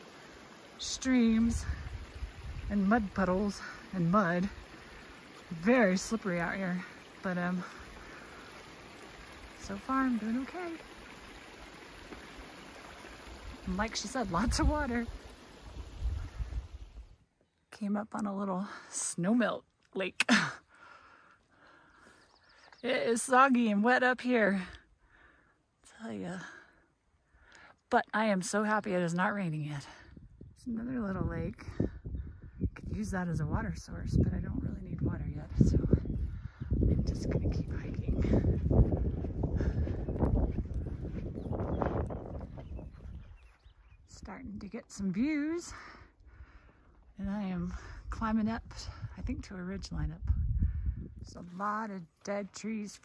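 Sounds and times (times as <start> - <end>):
water trickling in streams: 0.0 - 17.2, 33.6 - 44.2
footsteps on muddy trail: 1.4 - 16.8, 35.5 - 44.2, 51.3 - 53.0
microphone rumble: 30.2 - 43.5, 47.6 - 51.4.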